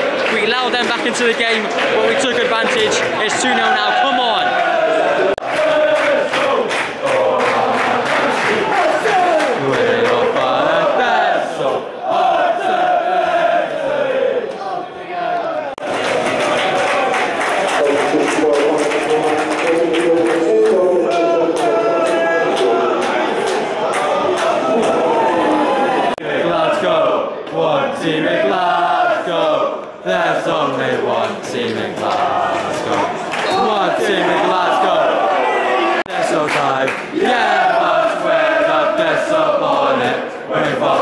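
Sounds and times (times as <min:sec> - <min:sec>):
crowd singing a chant: 0:00.9 - 0:17.2, 0:17.8 - 0:41.0.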